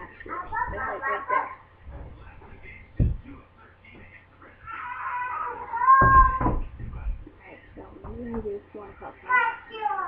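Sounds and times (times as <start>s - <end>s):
thump: 6.0s - 7.1s.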